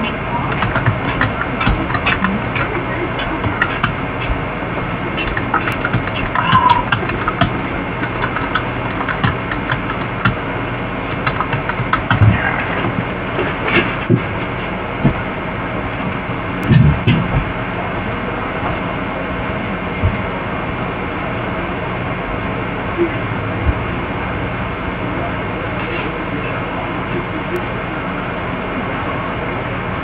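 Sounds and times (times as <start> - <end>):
low hum: 0.0 - 30.0
knocks and thumps: 5.2 - 10.4, 11.1 - 15.3, 16.6 - 17.6.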